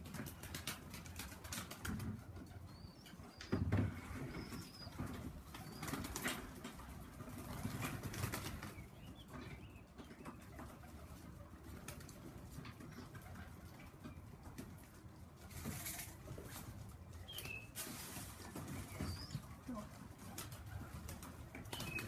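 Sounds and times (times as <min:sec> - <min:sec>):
pigeon wings flapping: 0:00.0 - 0:02.2, 0:05.5 - 0:08.8.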